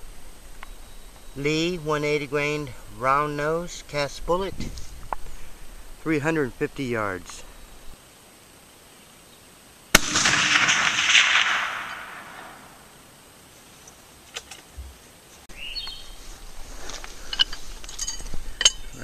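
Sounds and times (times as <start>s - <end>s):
rifle shot echoing: 9.9s - 13.0s.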